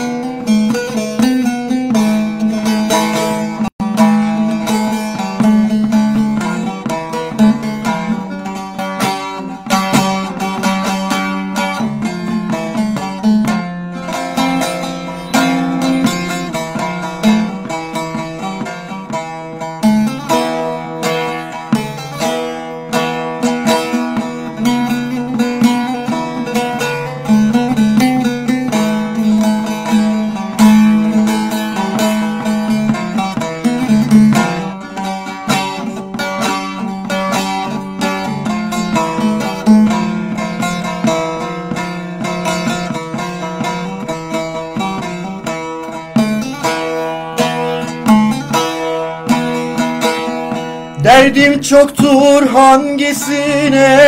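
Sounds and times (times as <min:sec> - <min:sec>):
plucked long-necked lute solo: 0:00.0 - 0:54.0.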